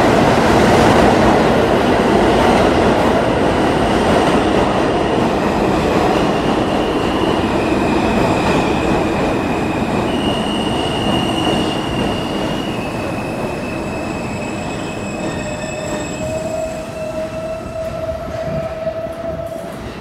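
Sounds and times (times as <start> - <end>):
subway train rumbling: 0.0 - 20.0
high train squeal: 4.9 - 20.0.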